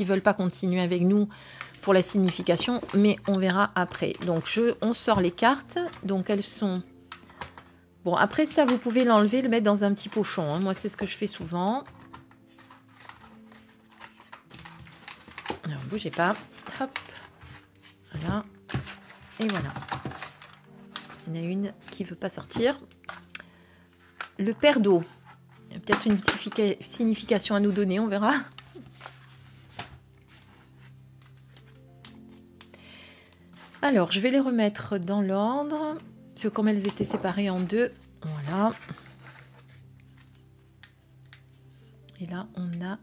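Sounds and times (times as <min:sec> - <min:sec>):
faint background music: 0:00.0 - 0:43.0
paper cards clicking: 0:11.8 - 0:17.4.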